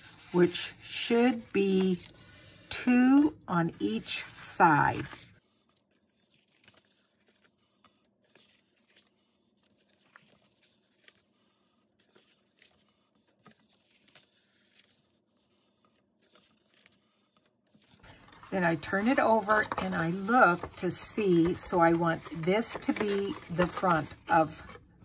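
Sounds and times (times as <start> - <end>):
cardstock rustling and crinkling: 0.0 - 25.0.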